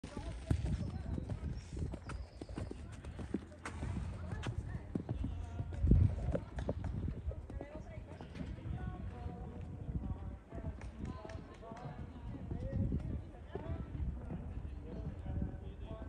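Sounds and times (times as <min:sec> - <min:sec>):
horse hooves on sand: 0:00.0 - 0:16.0.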